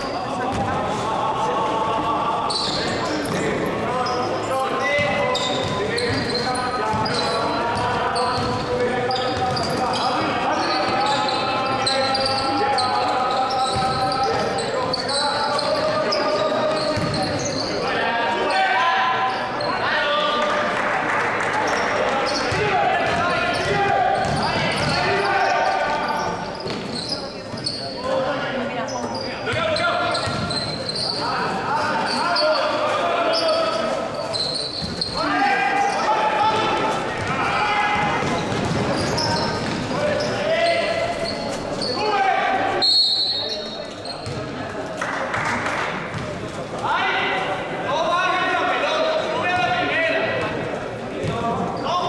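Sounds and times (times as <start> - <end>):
people calling out: 0.0 - 20.4, 21.7 - 43.8
sneakers squeaking on court: 2.5 - 17.8, 21.7 - 44.8, 46.1 - 46.7
basketball bouncing: 8.3 - 8.8, 9.4 - 9.8, 17.0 - 17.3, 22.5 - 25.1, 30.2 - 30.6, 38.0 - 39.9, 46.1 - 46.4.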